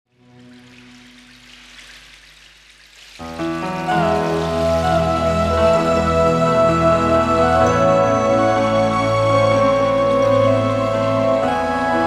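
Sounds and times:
slow love song with sustained chords: 0:03.2 - 0:12.0.

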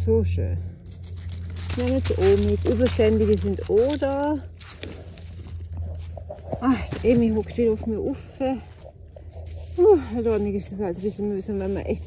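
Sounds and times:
steady low hum: 0:00.0 - 0:12.0
dry leaves rustling and crackling: 0:00.8 - 0:12.0.

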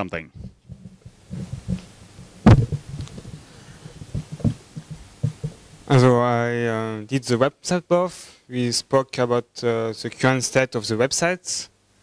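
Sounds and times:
microphone handling noise: 0:00.3 - 0:06.1
knock on microphone body: 0:00.4 - 0:05.6.

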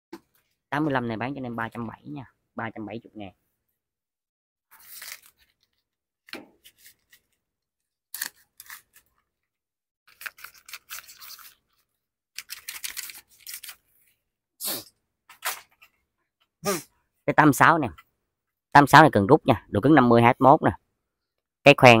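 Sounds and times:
plastic sleeve crinkling: 0:10.1 - 0:14.0.

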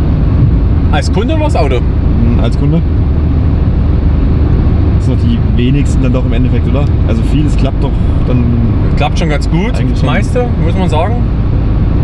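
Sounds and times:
road and engine noise in car: 0:00.0 - 0:12.0.

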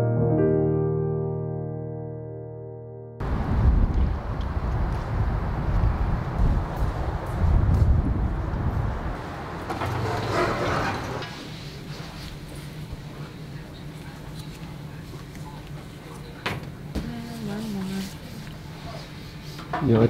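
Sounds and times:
soft piano music: 0:00.0 - 0:03.3
wind buffeting microphone: 0:03.2 - 0:09.7.

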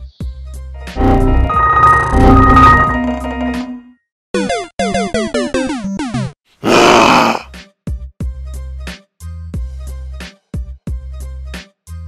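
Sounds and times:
falling synthetic tones: 0:00.9 - 0:03.5
loud burst of noise: 0:01.0 - 0:03.0.

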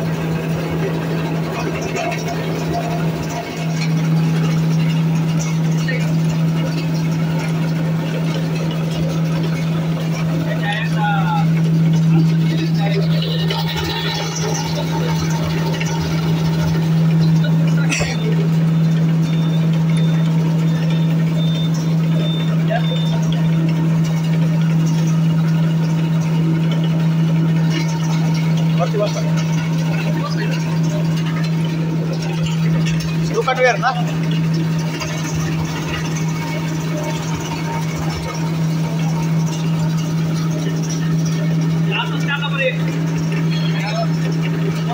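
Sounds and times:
shredder motor humming: 0:00.0 - 0:44.9.

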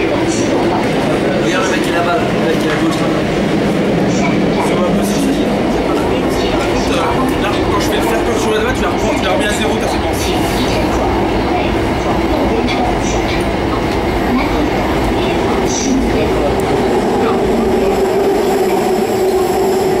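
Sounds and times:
metro train rumbling: 0:00.0 - 0:20.0.

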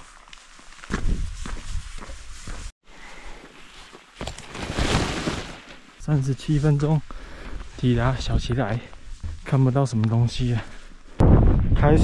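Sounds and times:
footsteps on a trail: 0:00.0 - 0:06.0, 0:06.6 - 0:11.1.

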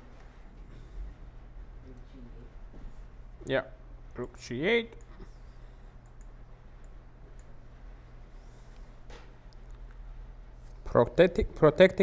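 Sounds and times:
low room hum: 0:00.0 - 0:12.0
faint mouse clicks: 0:06.0 - 0:07.6.

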